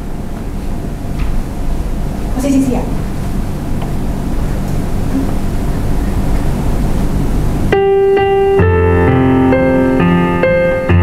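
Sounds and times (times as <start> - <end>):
electronic keyboard held note: 4.8 - 11.0.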